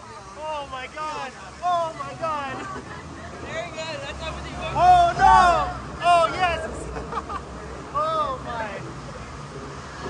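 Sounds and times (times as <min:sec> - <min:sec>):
raft riders yelling: 0:00.0 - 0:08.8
river rushing: 0:00.0 - 0:10.0.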